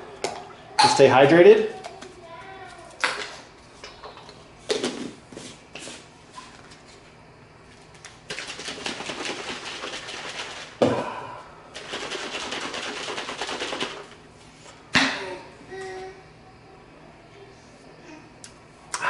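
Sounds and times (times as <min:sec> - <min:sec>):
shaker bottle rattling: 0:08.3 - 0:10.8, 0:11.8 - 0:14.2.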